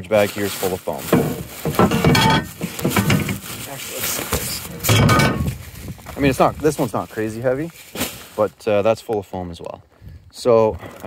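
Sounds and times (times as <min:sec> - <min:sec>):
plastic garbage bag rustling: 0:00.0 - 0:08.6.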